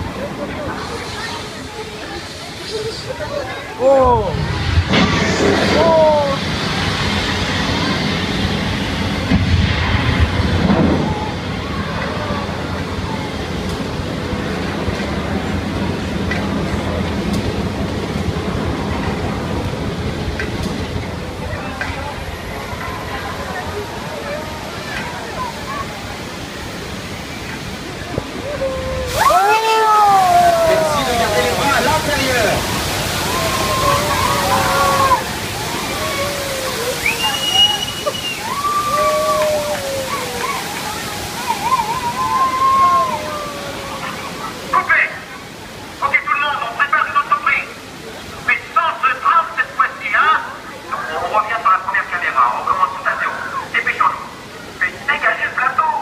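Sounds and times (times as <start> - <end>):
rushing water: 0.0 - 56.0
water gushing over rocks: 0.0 - 56.0
flame effect rushing with rumble: 4.0 - 22.7
people screaming: 10.7 - 13.4, 28.2 - 44.8.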